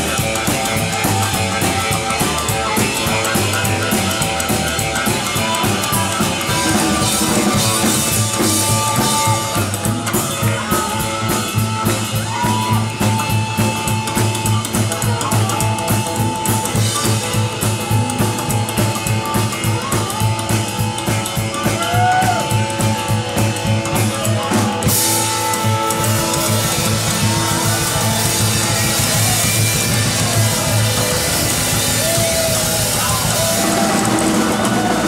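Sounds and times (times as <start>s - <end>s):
harmonica bending notes: 0.0s - 35.0s
live band playing: 0.0s - 35.0s.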